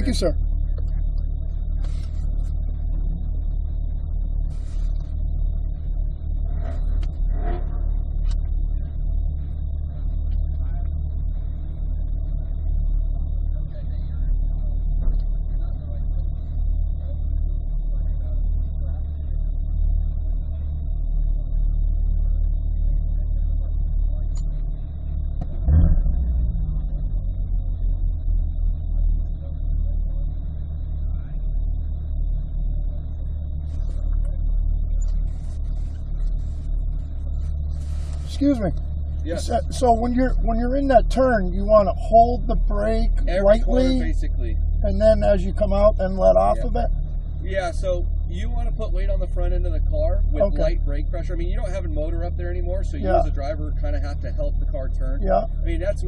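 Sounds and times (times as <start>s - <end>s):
car engine idling: 0.0s - 56.0s.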